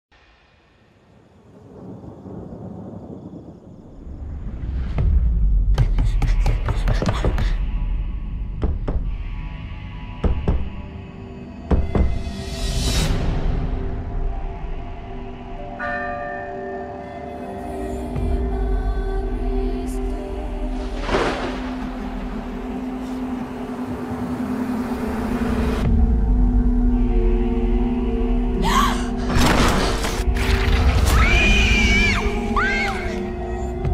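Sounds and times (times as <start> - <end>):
low thunder-like rumble: 1.5 - 5.7
low drone: 7.6 - 33.9.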